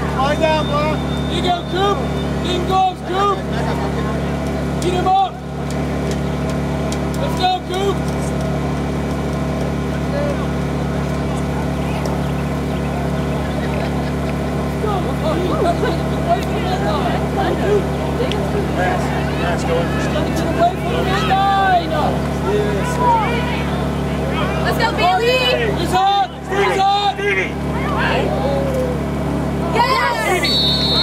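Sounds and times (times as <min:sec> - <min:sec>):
players and spectators shouting: 0:00.0 - 0:31.0
steady low hum: 0:00.0 - 0:31.0.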